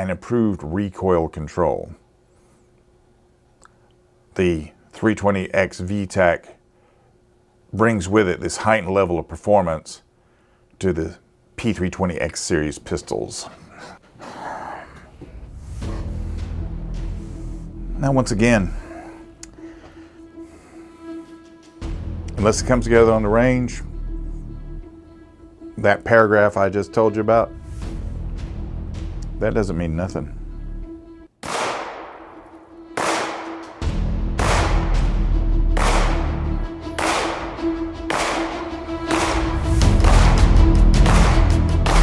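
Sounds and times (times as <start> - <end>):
quiet background music: 15.1 - 42.0
pistol shots: 31.4 - 33.8, 34.4 - 35.0, 35.8 - 36.4, 37.0 - 39.5.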